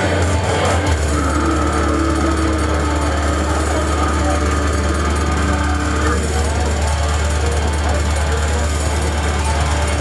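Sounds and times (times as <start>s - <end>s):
distorted electric guitar: 0.0s - 10.0s
growled vocals: 0.0s - 10.0s
very fast drumming: 0.0s - 10.0s.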